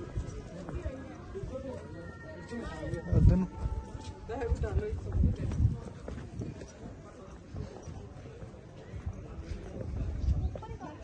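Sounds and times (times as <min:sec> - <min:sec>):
footsteps on cobblestones: 0:00.0 - 0:11.0
people's voices in background: 0:00.0 - 0:11.0.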